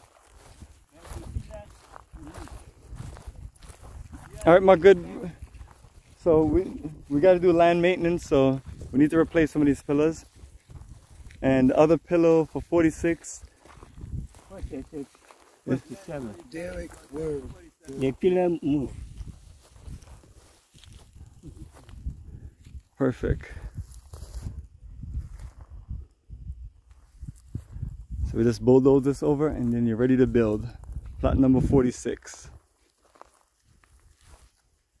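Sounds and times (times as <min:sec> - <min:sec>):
footsteps in dry grass: 0:00.0 - 0:35.0
wind rumble on microphone: 0:00.4 - 0:04.6, 0:08.0 - 0:11.5, 0:13.7 - 0:14.8, 0:18.8 - 0:32.6.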